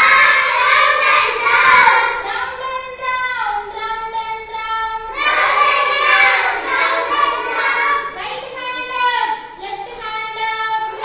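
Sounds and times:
young children singing in chorus: 0.0s - 2.6s, 4.8s - 8.2s.

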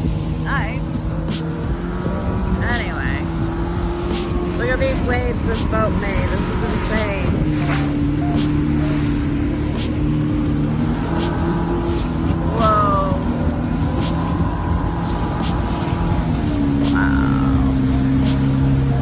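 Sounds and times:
motorboat engine running: 0.0s - 19.0s
wind and water rumble: 0.0s - 19.0s.

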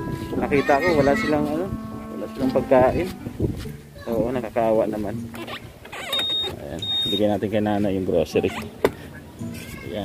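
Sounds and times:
person speaking: 0.0s - 5.1s
short high-pitched electronic beeps: 6.2s - 7.2s.

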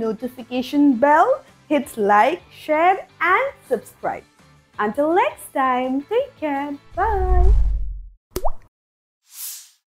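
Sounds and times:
cartoon pop with rising pitch: 7.4s - 8.7s.

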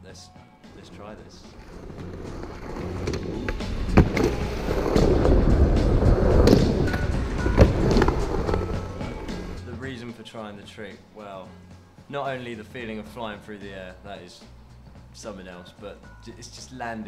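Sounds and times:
skateboard wheels rolling on concrete: 0.7s - 9.7s.

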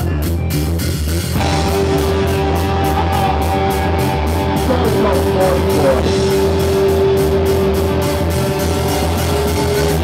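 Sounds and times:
distorted electric guitar: 0.0s - 10.0s
drum kit: 0.0s - 10.0s.

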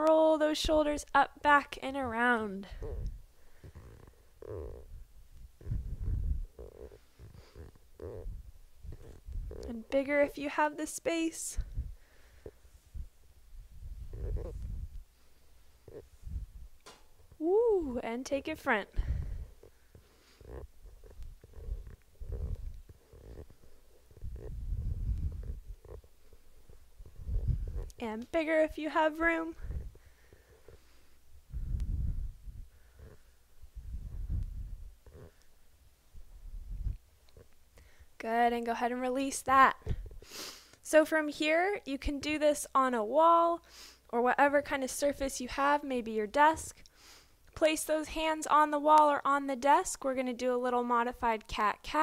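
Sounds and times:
fleece rubbing on microphone: 2.1s - 16.8s, 18.6s - 35.4s.

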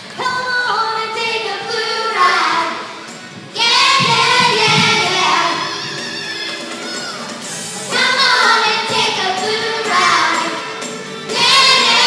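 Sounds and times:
children singing together: 0.0s - 12.0s.

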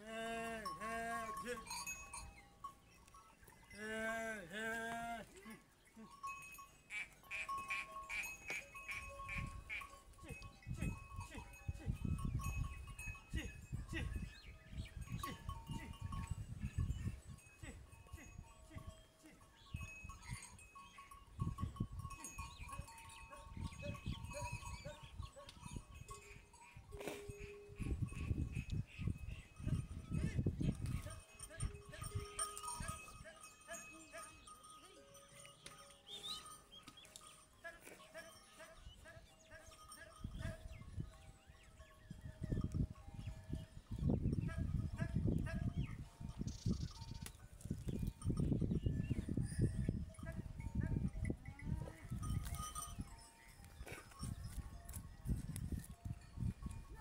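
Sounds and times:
farm animals calling: 0.0s - 55.1s
wind on microphone: 9.2s - 17.5s, 21.3s - 33.2s, 40.2s - 57.0s
high chirping calls: 35.4s - 37.6s, 45.7s - 49.4s.

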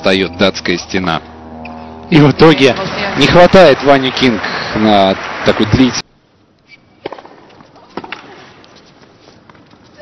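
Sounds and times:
low steady stadium hum: 0.0s - 10.0s.

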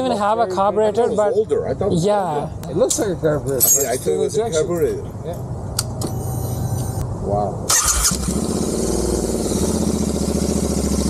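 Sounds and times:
motorcycle engine idling: 8.3s - 11.0s.

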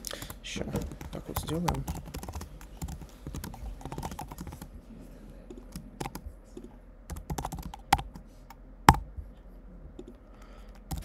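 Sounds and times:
typing on computer keyboard: 0.0s - 4.7s, 5.5s - 8.2s, 10.7s - 11.0s.

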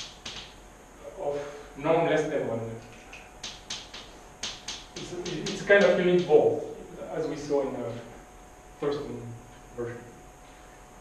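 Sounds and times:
chalk tapping on blackboard: 0.0s - 0.6s, 3.4s - 6.4s.

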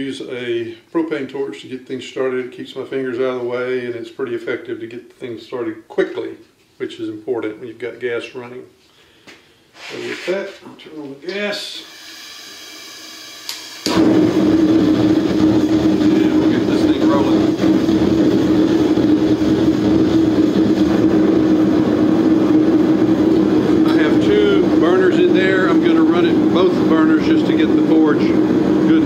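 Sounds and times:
gas hissing: 11.6s - 29.0s
forge burner roaring: 11.8s - 29.0s.

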